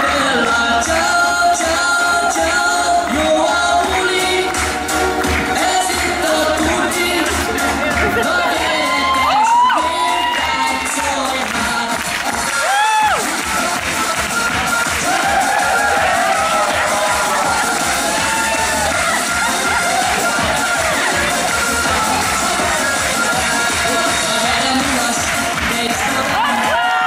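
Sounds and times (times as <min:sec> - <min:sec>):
audience cheering and shouting: 0:00.0 - 0:27.0
upbeat pop dance music: 0:00.0 - 0:27.0
loud whoops: 0:08.6 - 0:11.2, 0:12.5 - 0:13.3, 0:15.0 - 0:21.0, 0:26.3 - 0:27.0.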